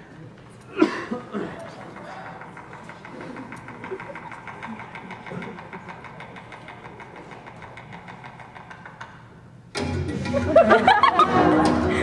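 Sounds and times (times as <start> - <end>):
loud music: 9.7 - 12.0.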